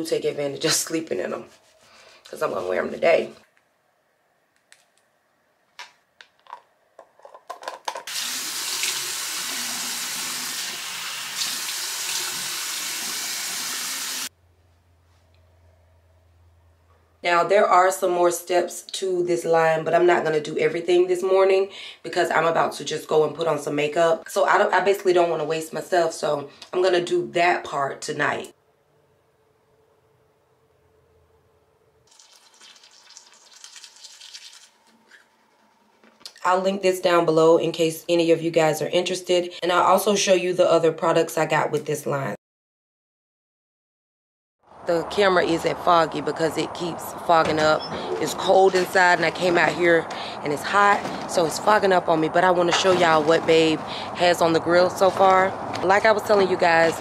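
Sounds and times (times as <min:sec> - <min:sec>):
sink tap running: 0:08.1 - 0:14.3.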